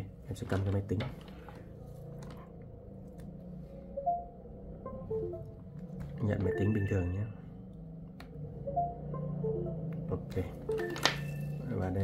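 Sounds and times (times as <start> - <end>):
steady low hum: 1.1 - 12.0
electronic connection chime: 4.0 - 5.6, 6.4 - 7.3, 8.7 - 10.0, 10.7 - 11.8.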